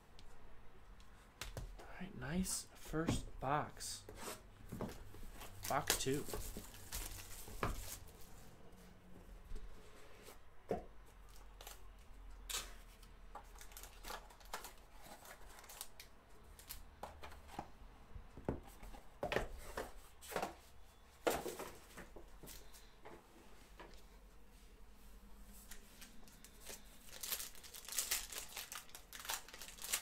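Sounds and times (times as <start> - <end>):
cardboard and foil rustling: 5.5 - 8.2, 25.7 - 30.0.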